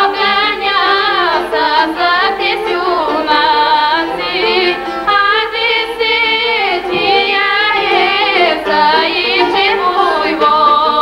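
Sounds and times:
women singing folk song: 0.0 - 11.0.

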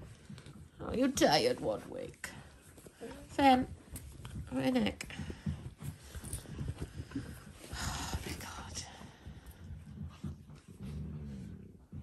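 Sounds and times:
dogs growling and grunting: 6.0 - 12.0.

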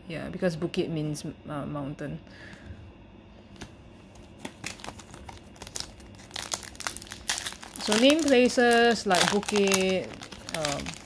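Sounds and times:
foil pack crinkling: 4.2 - 11.0.

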